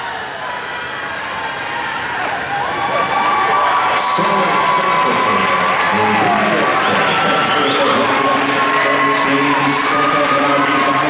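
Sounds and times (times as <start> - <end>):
crowd cheering and yelling: 0.0 - 11.0.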